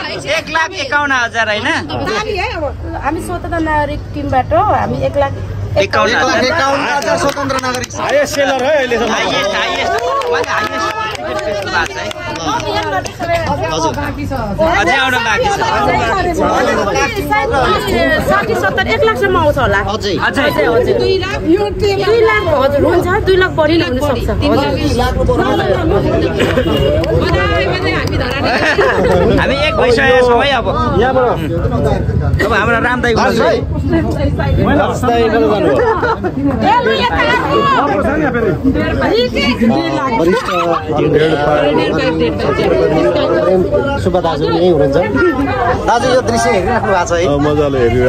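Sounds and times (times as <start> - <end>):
people chattering: 0.0 - 48.0.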